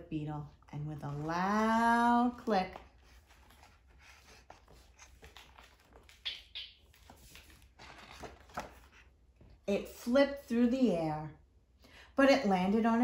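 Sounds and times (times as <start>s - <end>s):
book pages rustling: 1.0s - 9.6s
page swishes: 2.4s - 9.1s.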